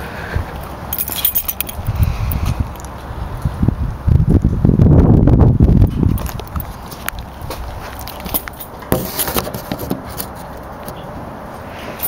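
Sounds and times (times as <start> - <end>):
rough engine exhaust beat: 0.0 - 11.0.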